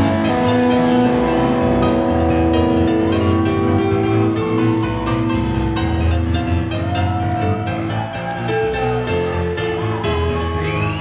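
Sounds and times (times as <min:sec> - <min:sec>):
rock band playing instrumental: 0:00.0 - 0:11.0.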